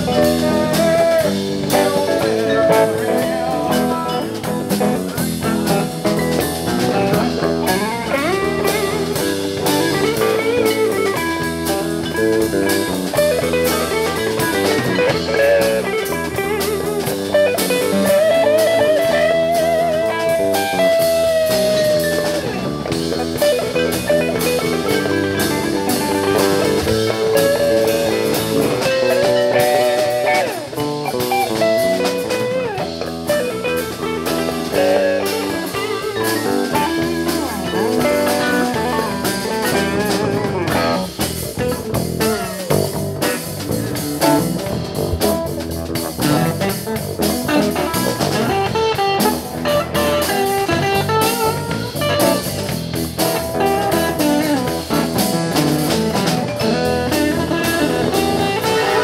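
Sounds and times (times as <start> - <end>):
live rock band playing: 0.0 - 59.0.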